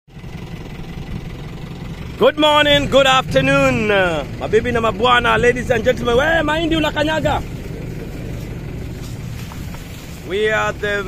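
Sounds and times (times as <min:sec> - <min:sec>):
steady low rumble: 0:00.3 - 0:11.0
man's voice: 0:02.2 - 0:07.6, 0:10.2 - 0:11.0.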